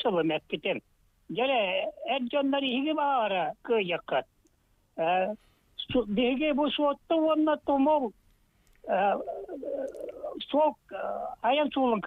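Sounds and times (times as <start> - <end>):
person speaking hesitantly: 8.8 - 11.4.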